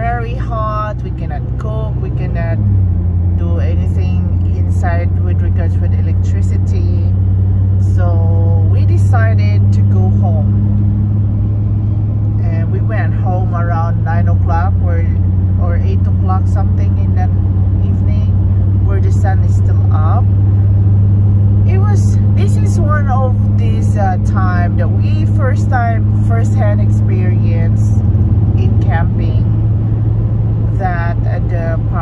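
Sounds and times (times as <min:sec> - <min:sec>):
car engine drone in cabin: 0:00.0 - 0:32.0
road noise: 0:00.0 - 0:32.0.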